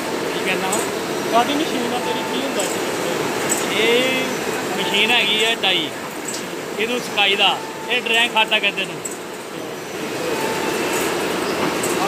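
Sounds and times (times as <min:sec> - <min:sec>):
fabric printing machine running: 0:00.0 - 0:12.0.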